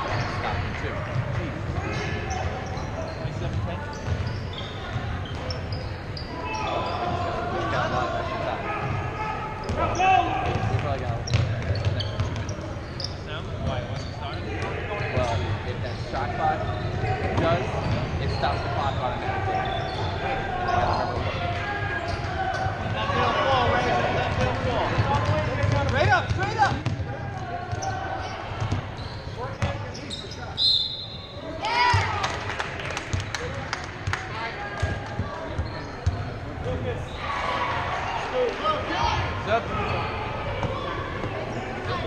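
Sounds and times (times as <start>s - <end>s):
sneakers squeaking: 0.0s - 32.2s, 34.8s - 42.0s
referee's whistle: 30.0s - 31.4s.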